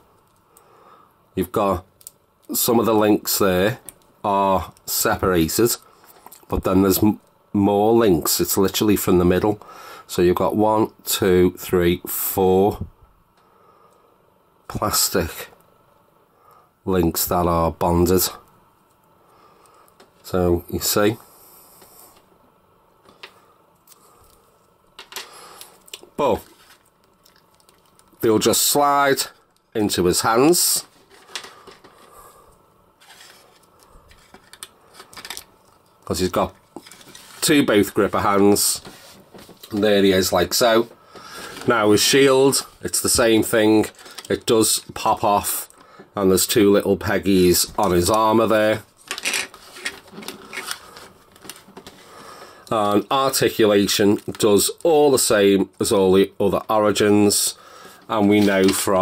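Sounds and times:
soft handling rustle: 23.0 - 46.2, 47.5 - 55.9, 57.3 - 59.0.

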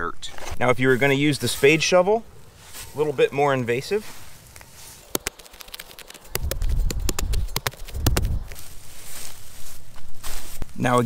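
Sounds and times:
sod snapping and crackling: 4.4 - 8.8
heavy thuds and crunches: 6.4 - 8.7.

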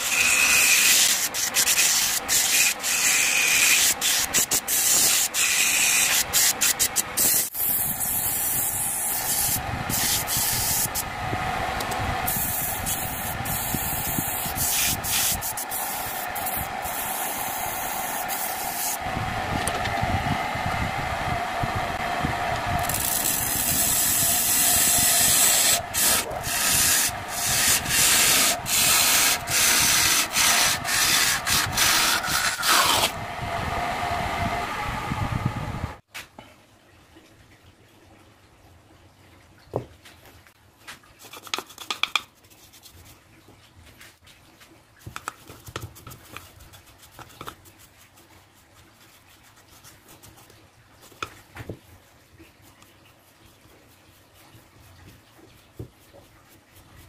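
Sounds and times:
wood lathe running: 0.0 - 4.2, 11.8 - 20.0, 22.0 - 33.2
sandpaper rubbing spinning cup: 0.0 - 11.1, 12.2 - 19.0, 22.8 - 33.2, 45.3 - 50.5
chisel scraping wood: 22.9 - 33.2.

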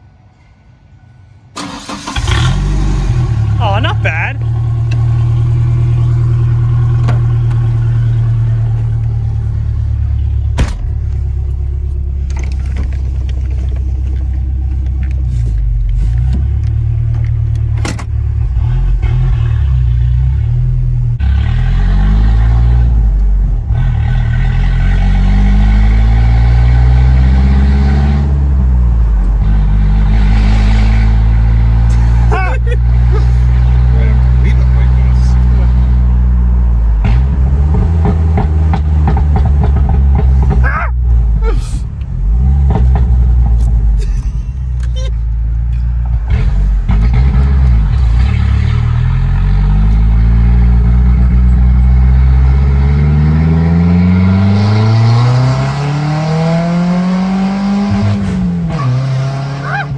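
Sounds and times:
pickup engine through open exhaust: 2.1 - 59.9.

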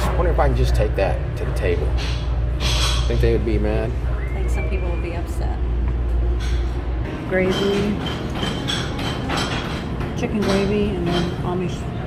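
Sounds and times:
busy dining room din: 0.0 - 12.0.

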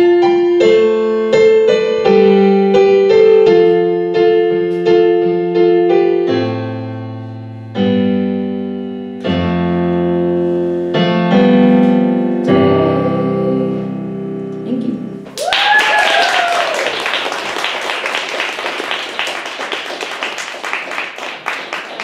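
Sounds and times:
digital piano chords: 0.0 - 15.4.

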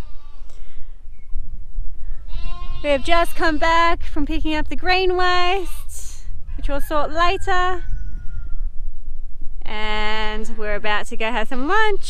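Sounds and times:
lamb bleating: 0.0 - 0.6, 2.2 - 3.6
wind rumble on microphone: 0.0 - 12.0.

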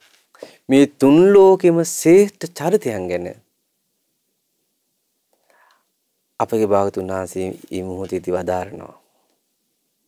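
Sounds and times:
faint short breath: 0.3 - 0.7, 5.4 - 5.9.

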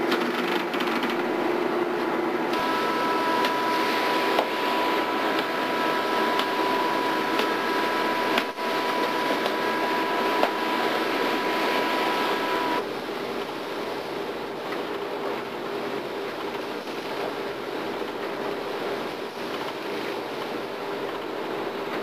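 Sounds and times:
high steady whine: 1.4 - 22.0
machinery drone: 2.5 - 12.9.

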